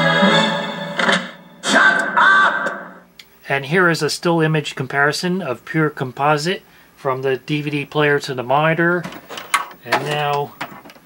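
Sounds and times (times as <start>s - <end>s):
trailer music: 0.0s - 2.9s.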